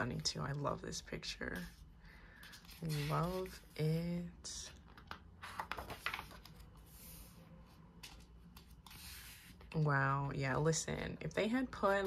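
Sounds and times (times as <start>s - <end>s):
page rustling: 1.6s - 4.0s, 4.9s - 7.3s.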